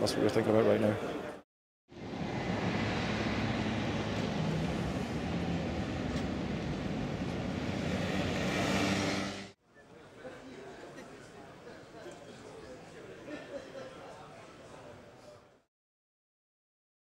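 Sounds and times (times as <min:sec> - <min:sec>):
traffic rumble: 0:01.9 - 0:09.5.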